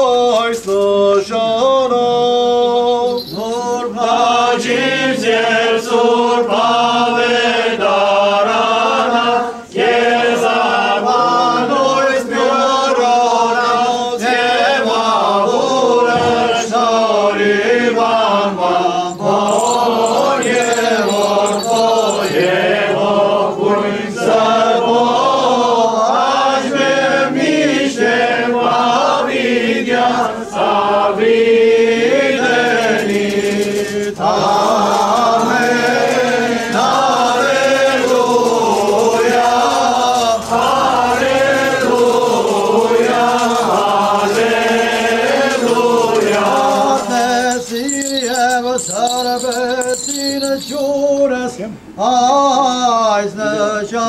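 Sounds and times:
liturgical chanting: 0.0s - 54.0s.

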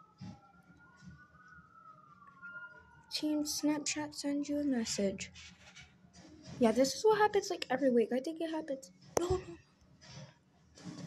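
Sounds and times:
faint siren wailing: 0.0s - 6.4s.

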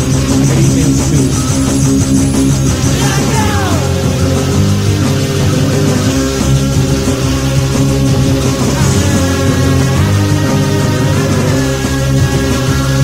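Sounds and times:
rock band playing loud: 0.0s - 13.0s.

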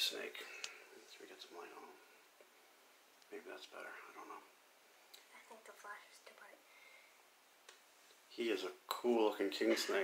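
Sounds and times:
person whispering: 3.3s - 4.5s, 5.2s - 6.7s.

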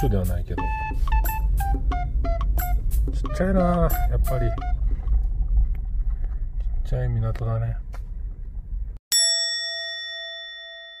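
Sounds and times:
bell-like chime ringing: 9.1s - 11.0s.

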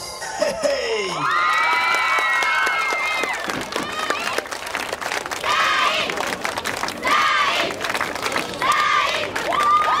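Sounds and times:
children cheering and shouting: 8.7s - 10.0s.

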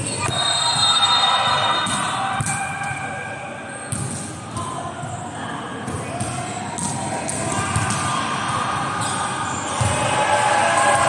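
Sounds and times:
volleyball thudding in echoing hall: 0.0s - 11.0s.

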